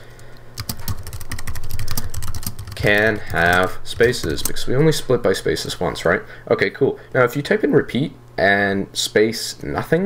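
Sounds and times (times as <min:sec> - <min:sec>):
low hum: 0:00.0 - 0:07.2
rapid typing on keyboard: 0:00.6 - 0:04.7.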